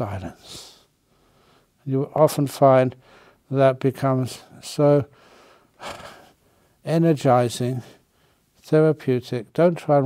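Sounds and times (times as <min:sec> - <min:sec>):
man speaking: 0:00.0 - 0:00.9, 0:01.8 - 0:05.1, 0:06.8 - 0:08.0, 0:08.6 - 0:10.0.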